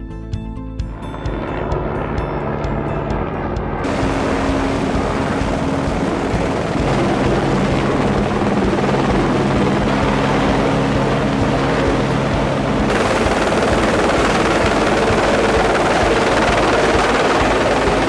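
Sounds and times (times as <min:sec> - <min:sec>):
helicopter rotor and engine: 0:00.6 - 0:18.0.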